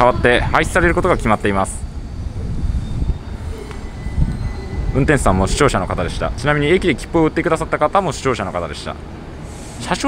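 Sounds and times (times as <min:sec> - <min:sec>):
electric train low rumble: 0:00.0 - 0:10.0.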